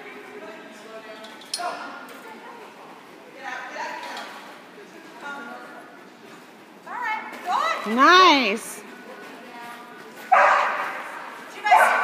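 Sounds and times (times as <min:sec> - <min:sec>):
dog barking: 0:10.3 - 0:11.0, 0:11.7 - 0:12.0.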